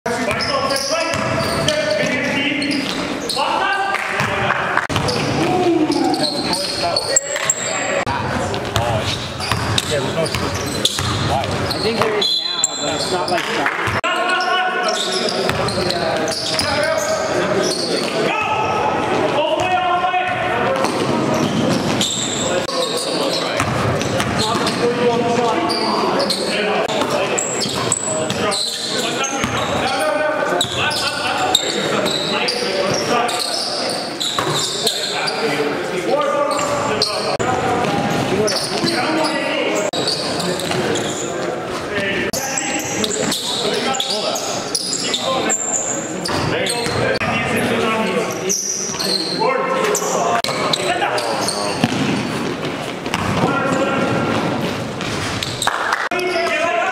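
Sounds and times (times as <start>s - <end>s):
echoing players' voices: 0.1s - 56.9s
basketball bouncing on court floor: 8.5s - 12.2s, 15.5s - 16.7s, 23.6s - 24.8s, 51.7s - 55.5s.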